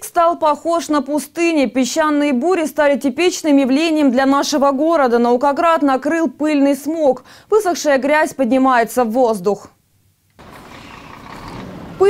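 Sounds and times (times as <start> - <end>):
road noise on gravel: 10.4 - 12.0
truck engine approaching: 10.4 - 12.0.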